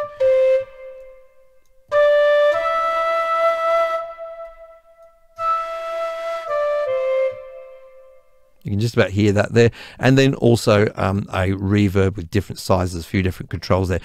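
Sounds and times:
bamboo flute notes with delay: 0.0 - 8.3.

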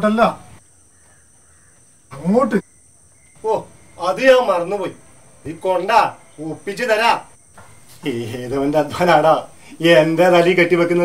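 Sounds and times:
high-pitched insect drone: 0.6 - 11.0.

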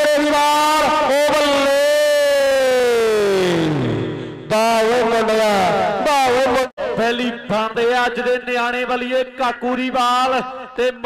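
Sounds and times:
man speaking quickly: 0.0 - 2.1, 4.5 - 11.0
man shouting a long note: 0.0 - 3.2.

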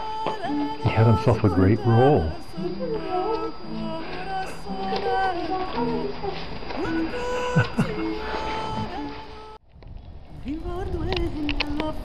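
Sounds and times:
woman singing love song: 0.0 - 9.6, 10.3 - 12.0
person laughing: 7.1 - 8.9.

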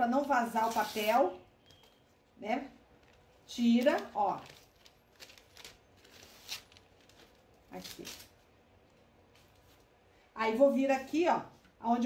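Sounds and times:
paper rustling and crinkling: 2.9 - 9.9.

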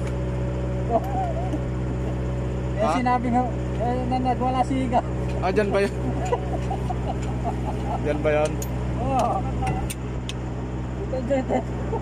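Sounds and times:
engine hum: 0.0 - 12.0.

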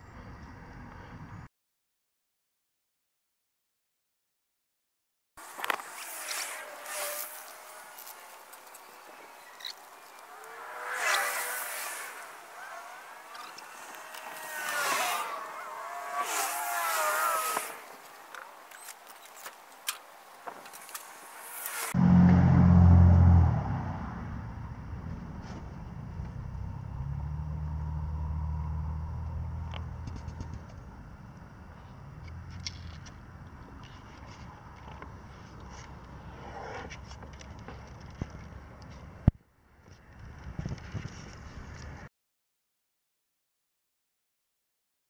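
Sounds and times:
fast-forwarded rushing hiss: 21.0 - 22.0
low motor hum: 21.9 - 32.5.

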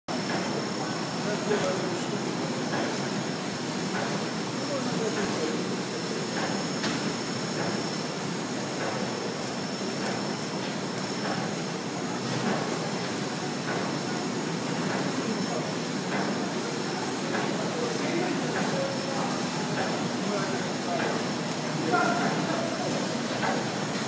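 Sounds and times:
high-pitched machine whine: 0.1 - 24.0
machine motors and rollers: 0.1 - 24.0.

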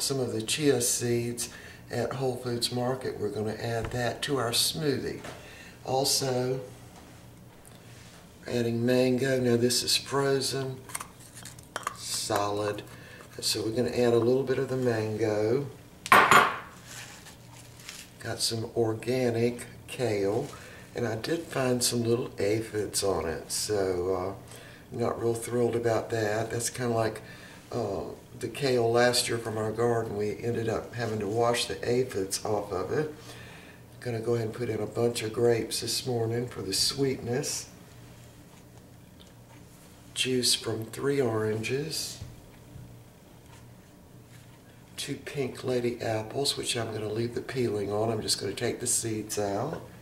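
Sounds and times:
soft handling noise: 16.7 - 18.2, 37.8 - 45.0.

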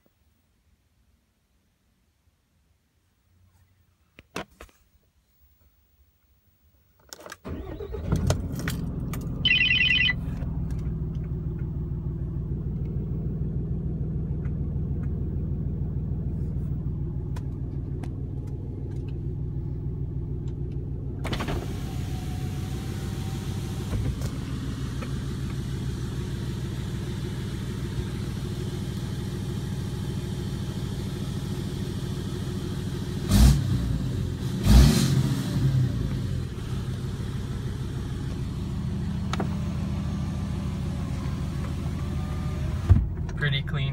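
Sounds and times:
diesel engine starting and idling: 7.3 - 43.9
short dashboard chime: 9.4 - 10.2
throttle blips: 9.4 - 10.2.

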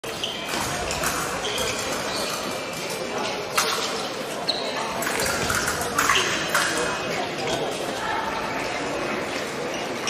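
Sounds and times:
shoes squeaking: 0.0 - 6.5, 9.3 - 10.0.

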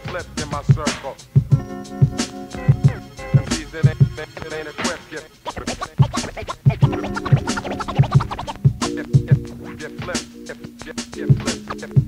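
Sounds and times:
hip hop beat: 0.0 - 12.0
snare and hi-hat strokes: 0.0 - 12.0
turntable scratching: 0.0 - 12.0
kick drum pattern: 1.4 - 4.2, 5.6 - 9.8
held low bass notes: 6.8 - 12.0.

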